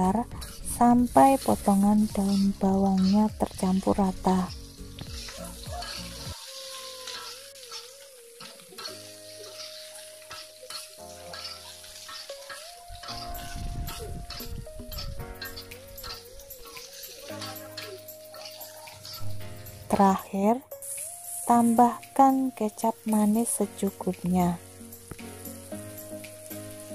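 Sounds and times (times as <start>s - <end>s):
food sizzling in a wok: 0.0s - 26.9s
soft background music: 0.0s - 26.9s
spatula scraping pan: 0.4s - 3.3s, 5.2s - 8.0s, 8.8s - 13.5s.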